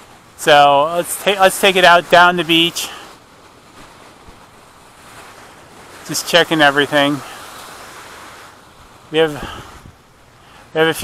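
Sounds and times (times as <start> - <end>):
small lake waves: 0.0 - 11.0
wind: 0.0 - 11.0.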